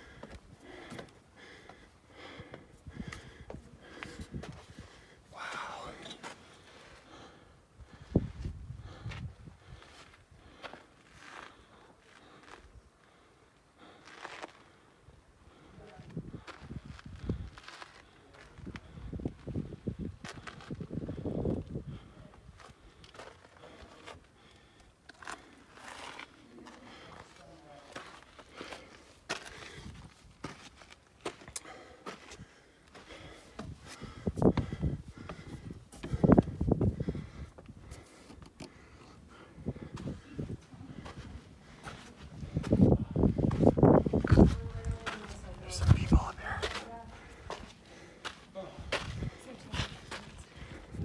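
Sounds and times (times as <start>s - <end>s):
footsteps on wooden ladders: 0.0s - 1.8s, 27.9s - 38.8s.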